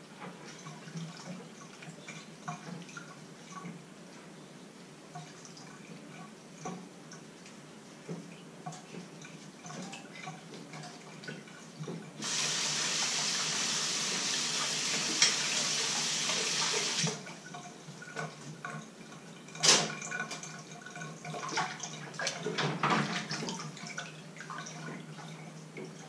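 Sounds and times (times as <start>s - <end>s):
tap water running: 11.8s - 26.0s.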